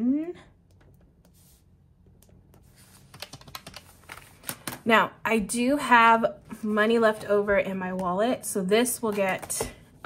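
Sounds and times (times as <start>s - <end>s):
calculator keys clicking: 3.1s - 4.8s.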